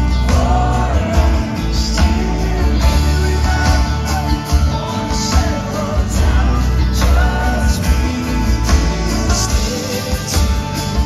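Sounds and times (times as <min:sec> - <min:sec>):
heavy bass: 0:00.0 - 0:11.0
live band music over pa: 0:00.0 - 0:11.0
strummed acoustic guitar: 0:00.0 - 0:11.0.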